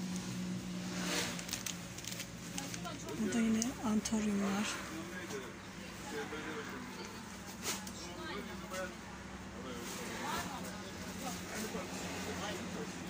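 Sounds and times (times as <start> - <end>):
faint voices talking: 2.4 - 13.0.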